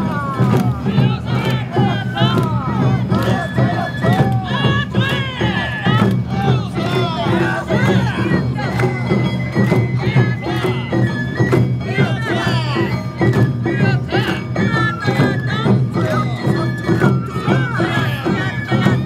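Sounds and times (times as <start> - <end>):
bamboo flute: 0.0 - 19.0
gong and drums beat: 0.0 - 19.0
voices calling: 0.0 - 19.0.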